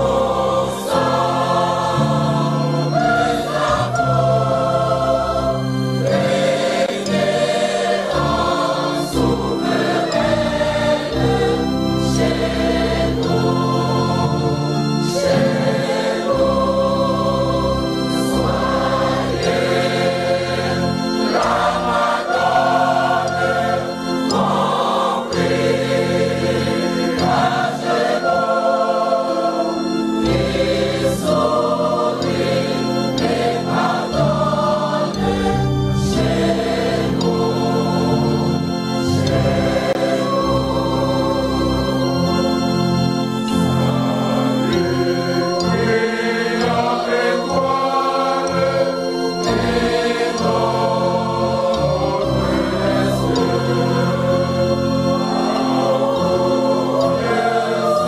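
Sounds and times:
choir singing: 0:00.0 - 0:58.0
organ chords: 0:00.0 - 0:58.0.

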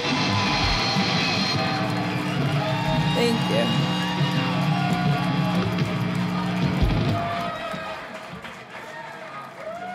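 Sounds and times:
audience clapping: 0:00.0 - 0:09.9.

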